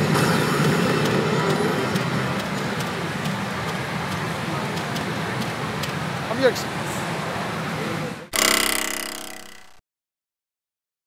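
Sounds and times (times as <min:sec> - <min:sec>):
bright ringing electronic sound: 0:08.3 - 0:09.8
pachinko parlour din: 0:08.4 - 0:09.8.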